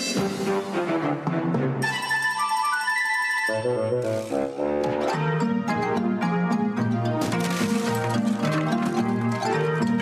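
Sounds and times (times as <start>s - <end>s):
cheerful instrumental music: 0.0s - 10.0s.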